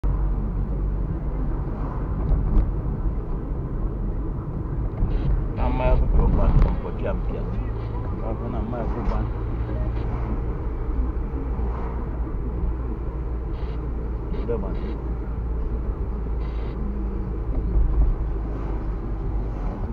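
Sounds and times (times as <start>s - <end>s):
car engine and road rumble: 0.0s - 19.9s.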